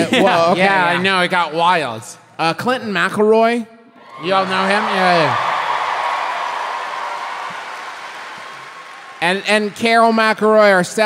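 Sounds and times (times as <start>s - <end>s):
audience applauding: 4.1s - 10.8s.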